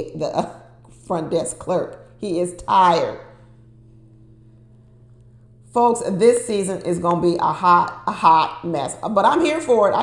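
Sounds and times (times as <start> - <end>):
woman speaking: 0.0 - 3.3, 5.7 - 10.0.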